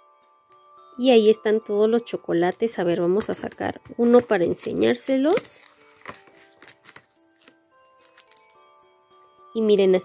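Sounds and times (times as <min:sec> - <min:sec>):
soft background music: 0:00.0 - 0:10.0
foil bag crinkling: 0:05.0 - 0:08.6.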